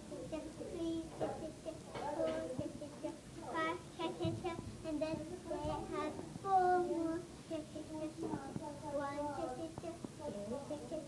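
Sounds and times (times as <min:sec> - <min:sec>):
girl singing: 0:00.0 - 0:11.0.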